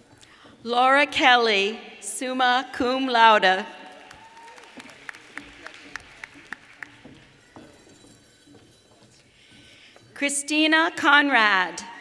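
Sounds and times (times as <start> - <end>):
person clapping: 4.0 - 7.4.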